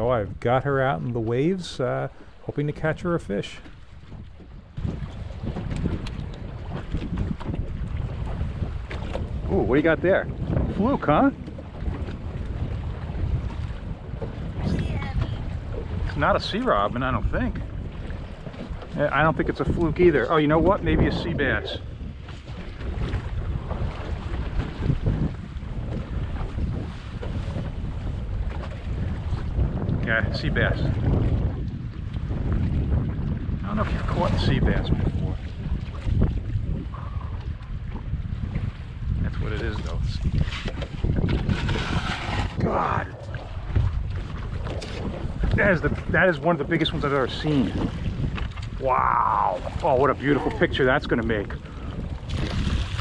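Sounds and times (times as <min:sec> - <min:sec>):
water washing against hull: 0:00.0 - 0:53.0
wind buffeting microphone: 0:00.0 - 0:53.0.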